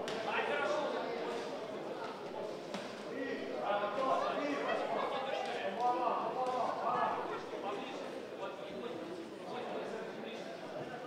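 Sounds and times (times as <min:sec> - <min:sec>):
voices talking in a hall: 0:00.0 - 0:11.0.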